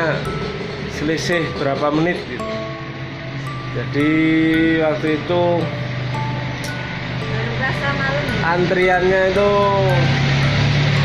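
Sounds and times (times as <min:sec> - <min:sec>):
road noise: 0:00.0 - 0:11.0
vehicle engine hum: 0:00.0 - 0:11.0.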